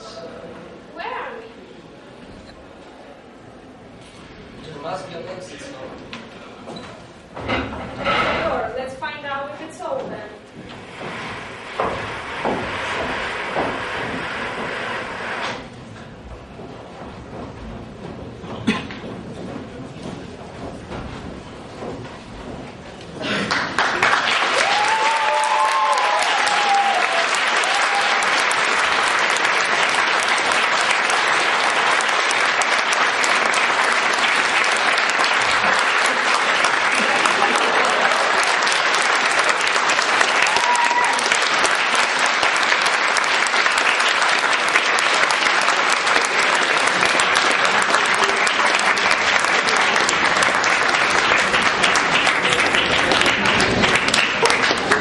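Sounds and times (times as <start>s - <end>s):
audience applauding: 10.8s - 15.7s, 22.6s - 55.0s.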